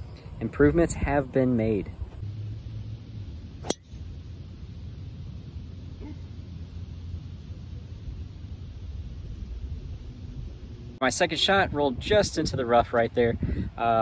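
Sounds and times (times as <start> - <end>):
golf club striking ball: 3.6 - 4.0
wind rumble on microphone: 8.1 - 14.0.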